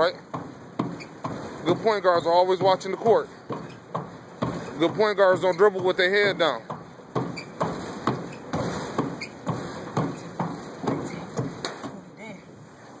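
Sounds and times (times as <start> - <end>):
hands and feet slapping planks: 0.0 - 12.1.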